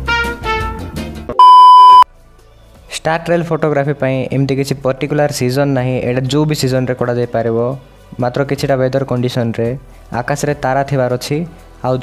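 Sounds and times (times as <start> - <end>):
brass swing music: 0.0 - 1.2
high test tone beep: 1.4 - 2.0.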